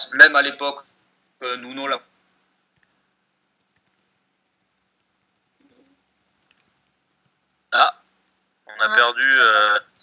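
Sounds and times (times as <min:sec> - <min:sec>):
faint clicks: 0:03.6 - 0:07.6.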